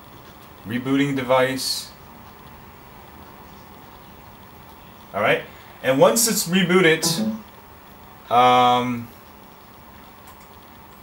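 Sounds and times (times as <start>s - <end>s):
faint hum: 4.7s - 7.6s
low hiss: 5.1s - 7.6s, 8.3s - 9.2s.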